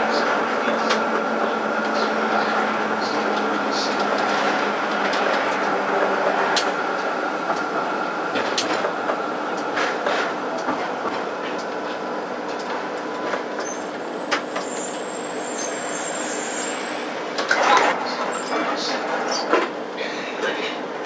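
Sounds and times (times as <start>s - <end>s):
tram wheels rumbling: 0.0s - 21.0s.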